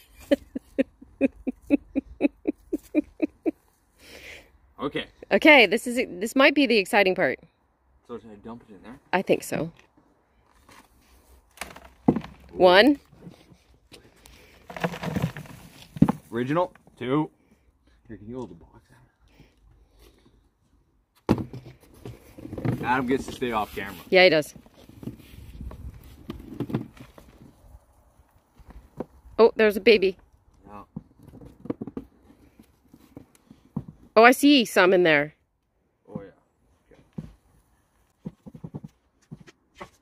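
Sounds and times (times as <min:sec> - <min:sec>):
rustling and pattering: 0:14.4 - 0:17.0.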